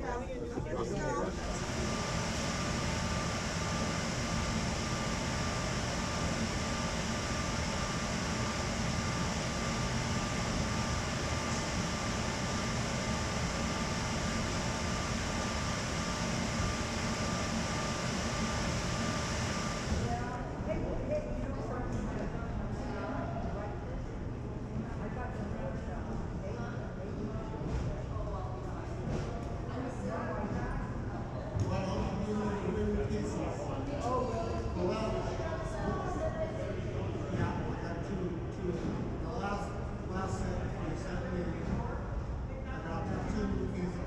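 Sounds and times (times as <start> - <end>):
engine-room machinery running: 1.2 - 20.6.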